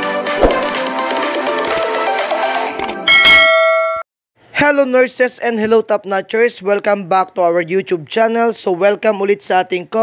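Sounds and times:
intro music: 0.1 - 1.5.

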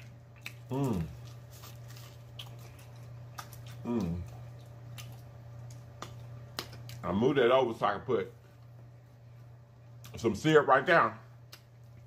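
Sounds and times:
eating clicks and smacks: 0.0 - 1.4, 2.0 - 7.1, 11.4 - 12.0
steady low hum: 0.0 - 12.0.

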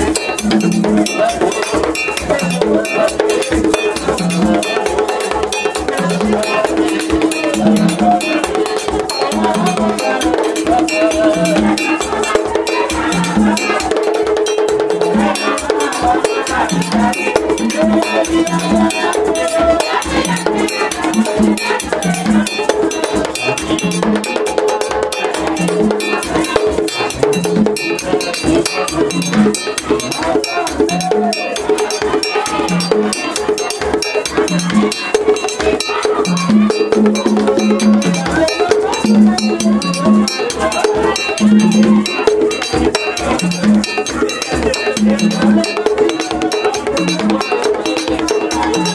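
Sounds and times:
hand drums: 0.0 - 48.9
voices singing: 0.0 - 48.9
metal bell struck: 16.6 - 48.9.

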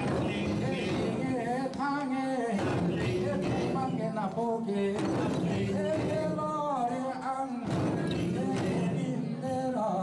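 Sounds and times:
men singing into a microphone: 0.0 - 10.0.

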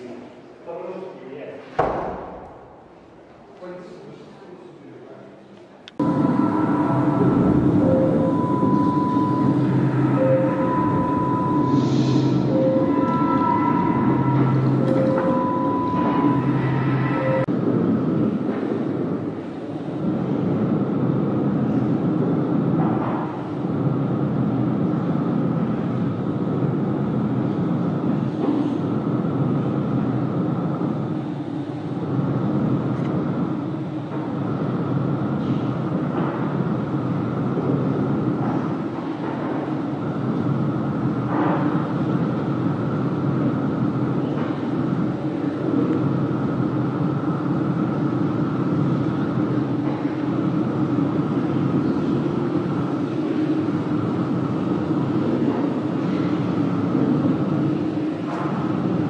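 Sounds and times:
thin steady hum: 5.8 - 59.0
low electronic drone: 6.0 - 59.0.

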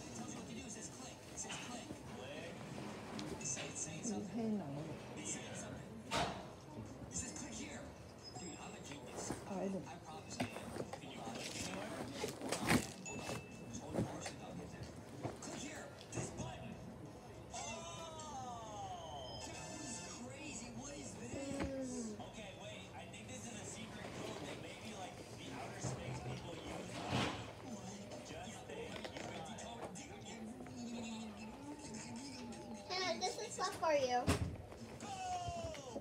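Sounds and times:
faint background speech: 0.0 - 36.0.

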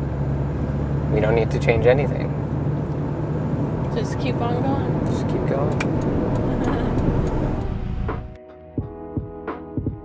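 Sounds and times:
car cabin vehicle noise: 0.0 - 8.4
background music with drum hits: 7.5 - 10.0.

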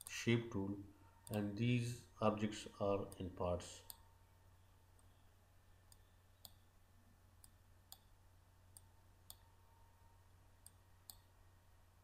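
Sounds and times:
low steady hum: 0.0 - 12.0
computer mouse clicks: 7.4 - 8.1.

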